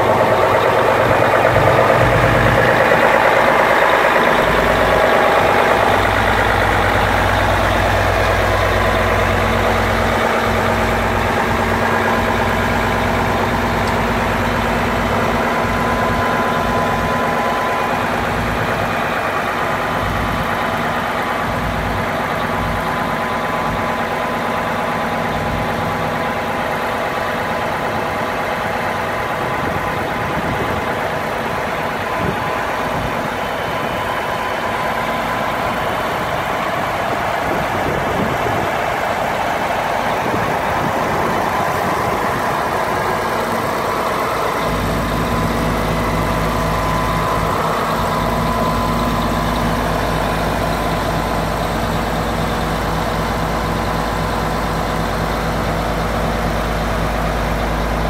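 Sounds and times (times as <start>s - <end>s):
truck diesel engine running: 0.0s - 58.0s.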